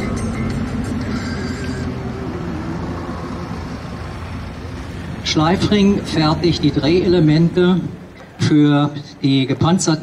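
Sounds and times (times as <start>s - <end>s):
car driving past: 0.0s - 6.7s.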